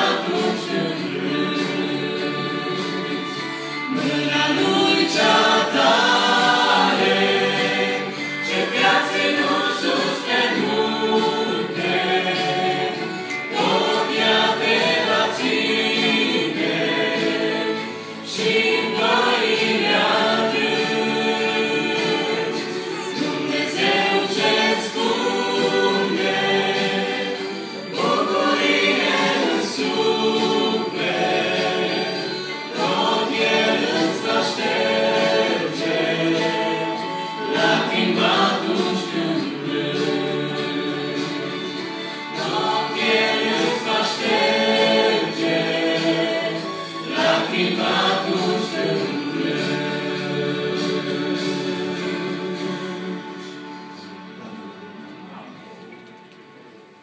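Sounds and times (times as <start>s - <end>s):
group singing in harmony: 0.0s - 56.1s.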